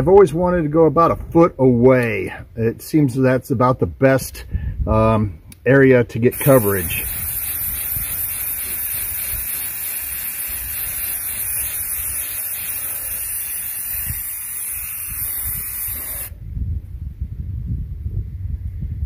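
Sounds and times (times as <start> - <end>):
aerosol spray can hissing: 6.3 - 16.4.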